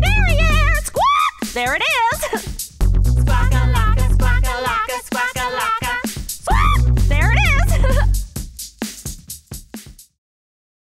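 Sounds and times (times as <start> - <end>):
electronic drum machine beat: 0.0 - 10.2.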